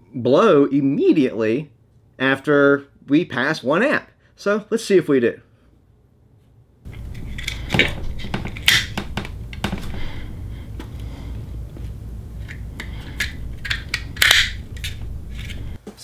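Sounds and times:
low rumble: 0:06.9 - 0:15.8.

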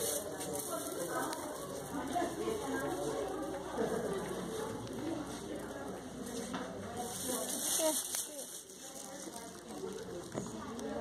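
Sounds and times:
people talking in a large hall: 0:00.0 - 0:11.0.

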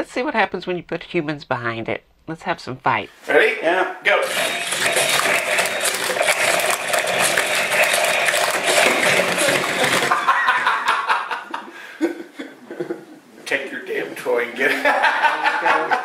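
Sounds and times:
toy robot motors running: 0:04.2 - 0:10.2
plastic robots clattering together: 0:04.3 - 0:10.1.

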